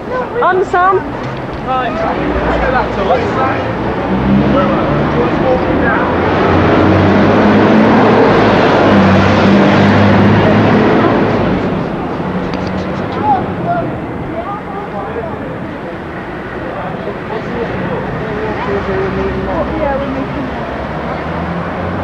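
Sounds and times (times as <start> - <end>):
traffic noise: 0.0 - 22.0.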